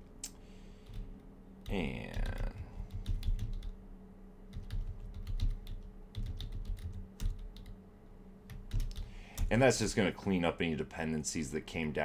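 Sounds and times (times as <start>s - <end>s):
computer keyboard typing: 0.8s - 3.8s, 4.5s - 7.8s, 8.5s - 9.1s.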